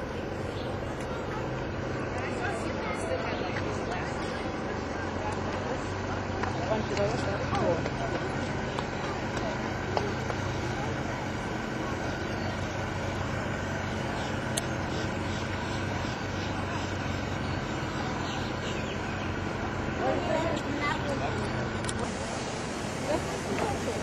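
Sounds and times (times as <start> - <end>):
faint voices: 0.0 - 24.0
low engine drone: 0.0 - 24.0.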